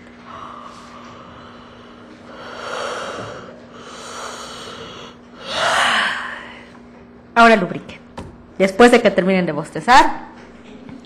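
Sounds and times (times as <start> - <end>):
faint steady hum: 0.0 - 11.0
woman yawning: 4.2 - 6.6.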